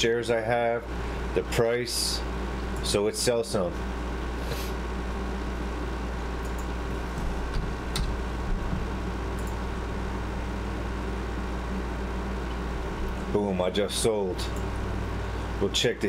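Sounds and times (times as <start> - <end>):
low hum: 2.2 - 16.0
keyboard and mouse clicks: 6.4 - 6.7, 7.5 - 8.2, 9.4 - 9.6.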